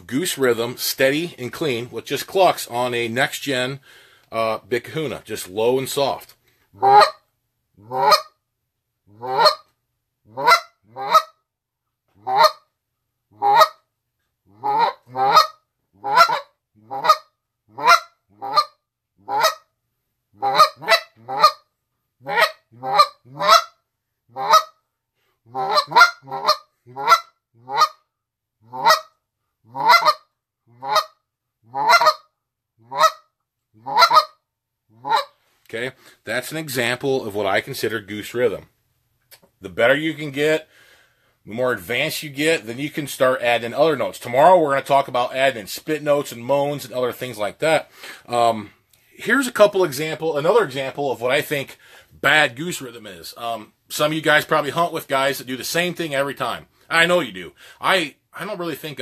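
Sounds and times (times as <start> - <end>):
goose call clucks: 6.8 - 7.2, 7.8 - 8.3, 9.1 - 9.7, 10.3 - 11.4, 12.2 - 12.7, 13.4 - 13.8, 14.5 - 19.7, 20.4 - 21.6, 22.2 - 24.8, 25.5 - 28.0, 28.6 - 34.4, 35.0 - 35.4.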